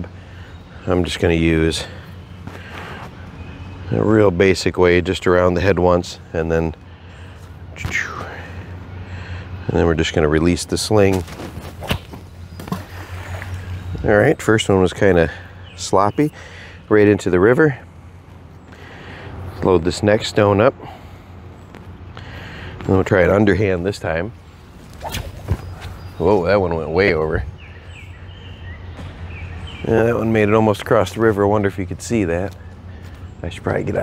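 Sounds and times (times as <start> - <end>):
low outdoor rumble: 0.0 - 34.0.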